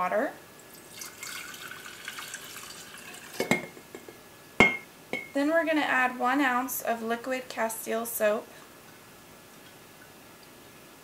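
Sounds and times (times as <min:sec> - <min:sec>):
water pouring into glass jar: 0:00.7 - 0:03.7
sharp ringing glass knock: 0:04.6 - 0:05.4.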